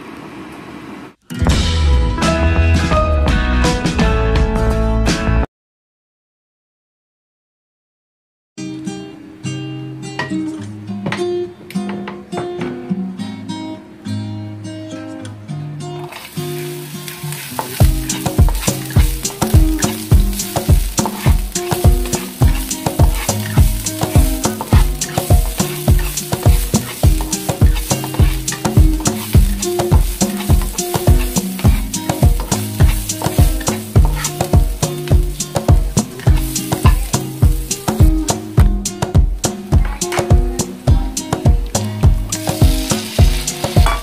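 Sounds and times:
onion sizzling in hot oil: 16.1 - 44.0
spatula stirring in wok: 16.2 - 38.5, 42.1 - 44.0
background music with steady beat: 17.6 - 44.0.

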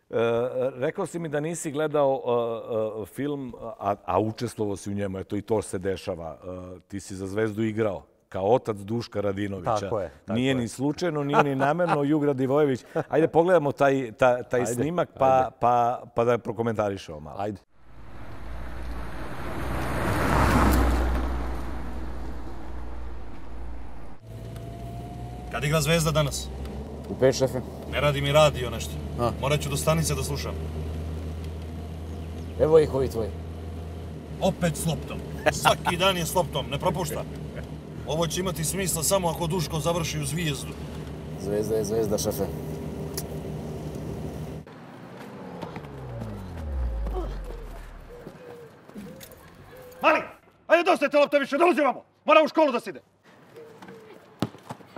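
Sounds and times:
car engine and tyre noise: 17.8 - 49.9
engine hum inside car: 17.9 - 44.7.

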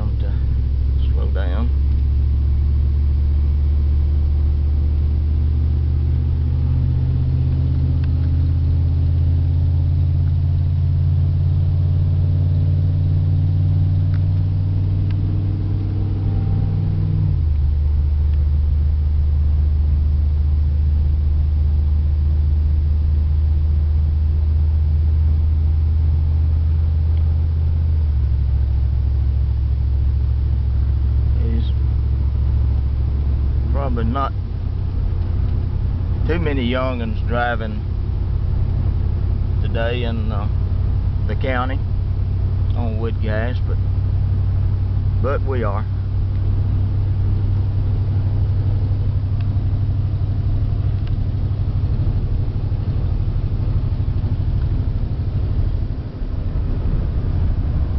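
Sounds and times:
pickup truck engine accelerating: 0.0 - 57.9.

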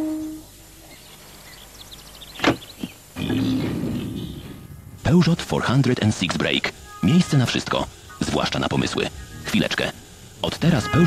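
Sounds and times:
boar grunting squeal: 3.2 - 4.6.

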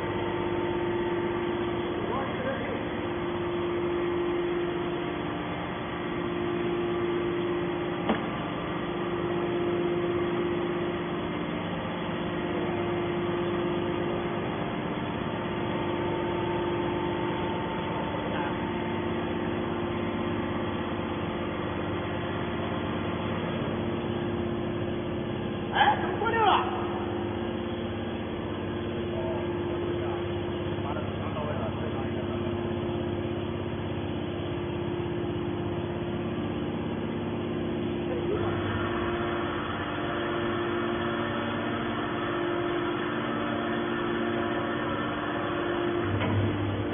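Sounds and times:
machine hum: 0.0 - 46.9.

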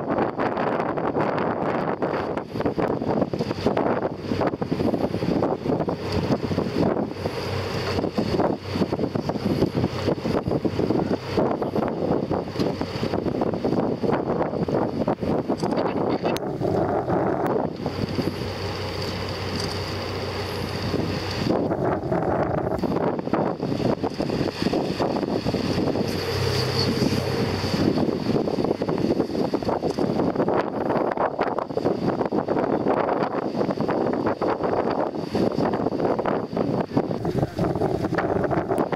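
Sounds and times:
boat engine humming: 0.0 - 38.9
wind buffeting microphone: 0.0 - 38.9.

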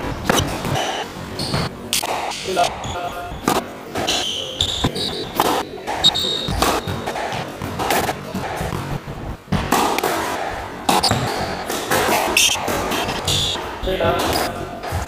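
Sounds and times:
squash ball bouncing and knocking: 0.0 - 15.0
shoe squeaks: 0.3 - 1.7, 2.3 - 7.4, 10.9 - 13.7.

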